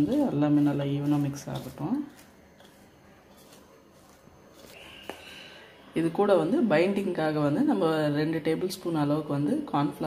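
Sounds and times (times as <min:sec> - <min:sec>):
shredded vegetables rustling in bowl: 0:00.0 - 0:05.1.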